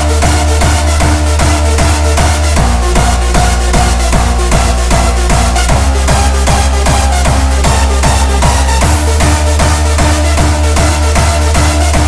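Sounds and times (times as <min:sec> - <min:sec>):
electronic dance track: 0:00.0 - 0:12.0
heavy kick drum: 0:00.0 - 0:12.0.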